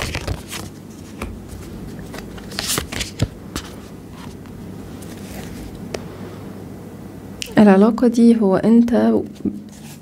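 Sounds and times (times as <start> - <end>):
cards shuffling: 0.0 - 4.4.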